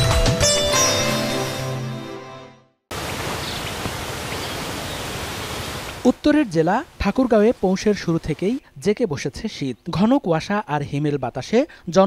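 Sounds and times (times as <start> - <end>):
outdoor ambience hiss: 2.9 - 12.0.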